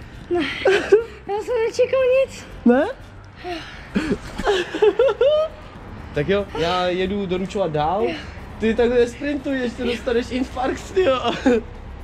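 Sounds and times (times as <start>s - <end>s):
boy laughing: 0.3s - 1.2s, 3.9s - 5.6s
man laughing: 4.0s - 5.6s, 9.7s - 11.7s.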